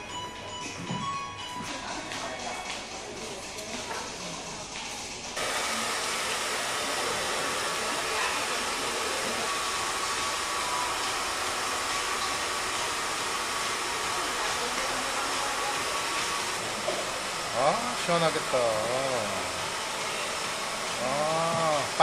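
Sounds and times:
background music: 0.0s - 5.4s
hair dryer running: 5.4s - 22.0s.

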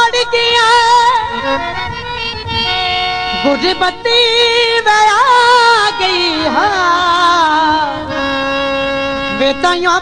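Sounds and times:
held instrumental notes: 0.0s - 10.0s.

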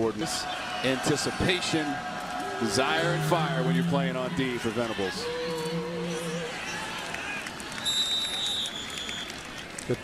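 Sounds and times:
stadium crowd noise: 0.0s - 10.0s
referee's whistle: 7.8s - 9.4s.

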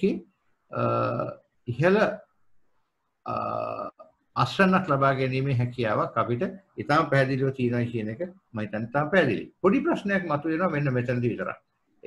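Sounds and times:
man speaking: 0.0s - 2.3s, 3.2s - 11.7s.

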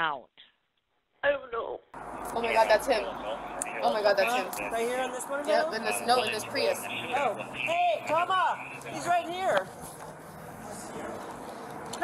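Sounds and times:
traffic hum: 2.0s - 12.0s.

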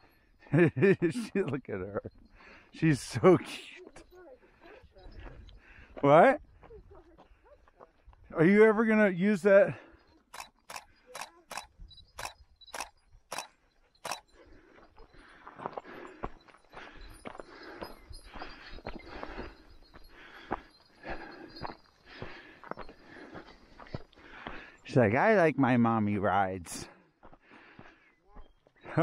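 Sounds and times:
footsteps on dirt trail: 3.7s - 8.6s, 9.6s - 25.1s, 25.7s - 29.0s.

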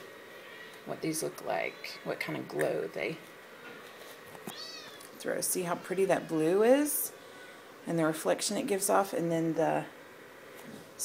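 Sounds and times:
high-pitched animal cry: 4.5s - 5.1s.

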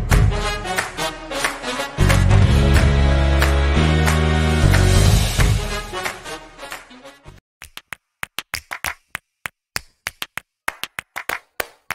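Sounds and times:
hand claps: 0.7s - 6.9s, 7.6s - 11.9s.

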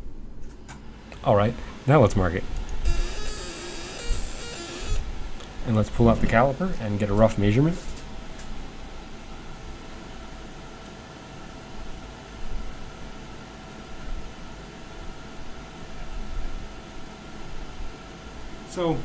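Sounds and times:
machine fan hum: 0.0s - 19.0s.

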